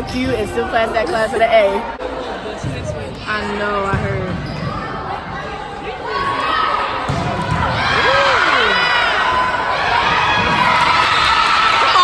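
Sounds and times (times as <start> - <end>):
players' voices: 0.0 - 11.0
volleyball hit echoing in gym: 2.5 - 5.6, 6.4 - 12.0.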